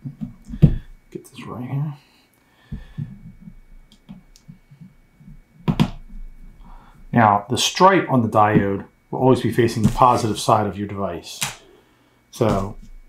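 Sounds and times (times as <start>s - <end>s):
knocks and clicks on breadboard: 5.6s - 6.2s.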